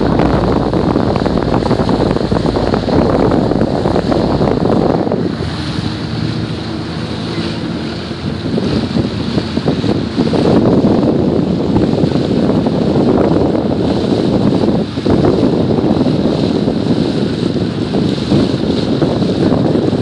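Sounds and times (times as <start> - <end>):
low boat engine hum: 0.0 - 20.0
water rushing past hull: 0.0 - 20.0
wind buffeting microphone: 0.0 - 20.0.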